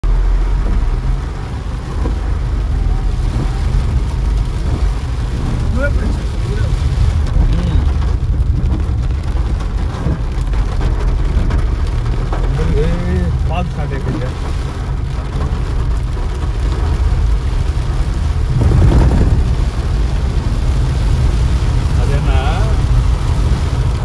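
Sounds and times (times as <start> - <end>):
car engine rumble: 0.0 - 24.0
rain on a car: 0.0 - 24.0
tyres on a wet road: 0.0 - 24.0.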